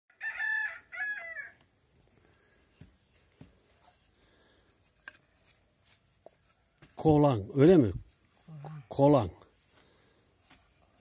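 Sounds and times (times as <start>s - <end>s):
rooster crowing: 0.1s - 1.6s.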